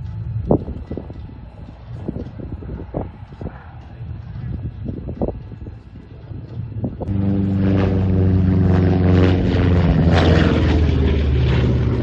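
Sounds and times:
propeller plane engine fly-by: 0:00.0 - 0:12.0.

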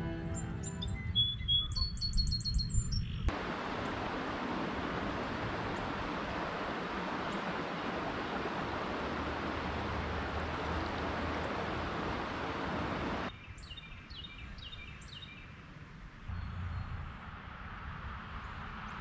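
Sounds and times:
small birds chirping: 0:00.3 - 0:04.0
river rushing: 0:03.3 - 0:13.3.

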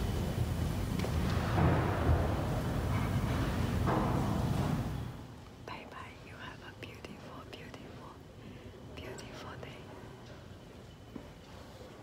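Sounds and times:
woman whispering: 0:05.6 - 0:10.0.

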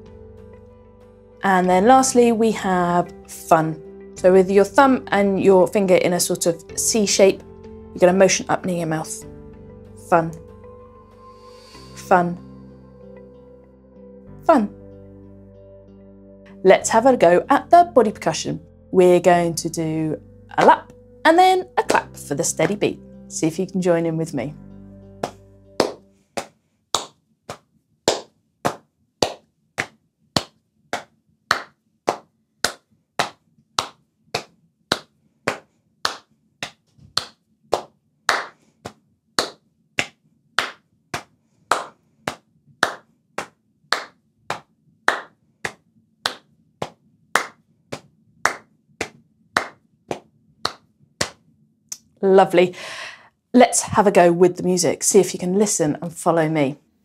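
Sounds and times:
hands clapping: 0:25.2 - 0:51.4
hands patting lap: 0:25.2 - 0:51.4.

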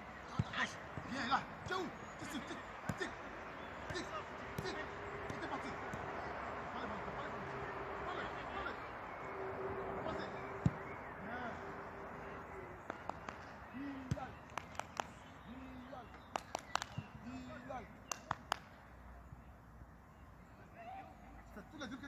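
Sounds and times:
distant shouts: 0:00.0 - 0:18.5, 0:20.5 - 0:21.9
football kicked thud: 0:10.6 - 0:10.8.

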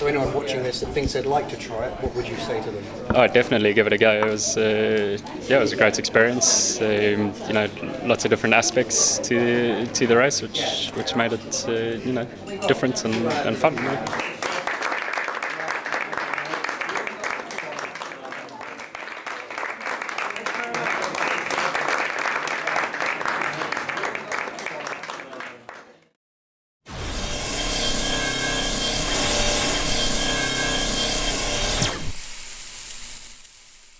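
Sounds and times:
people applauding: 0:13.4 - 0:26.1.

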